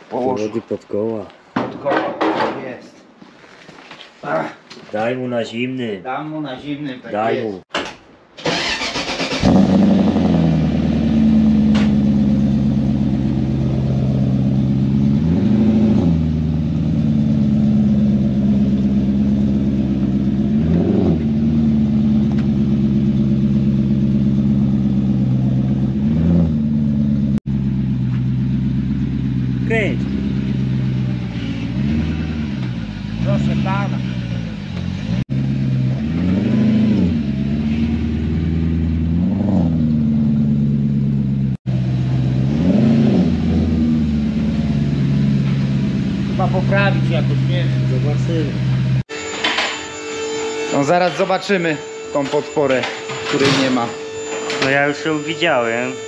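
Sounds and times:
car engine revving and idling: 8.5s - 49.1s.

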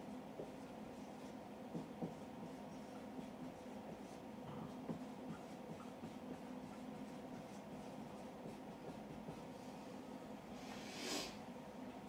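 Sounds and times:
marker writing on whiteboard: 0.0s - 9.5s
low steady hum: 0.0s - 12.0s.

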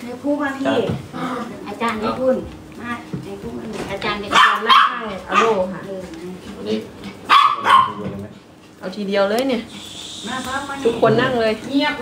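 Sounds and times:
small dog yapping: 4.3s - 5.6s, 7.3s - 8.0s.

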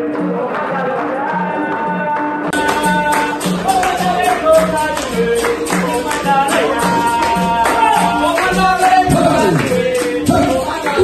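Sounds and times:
hand clapping: 0.0s - 11.0s
people singing: 0.0s - 11.0s
berimbaus playing: 5.2s - 11.0s.

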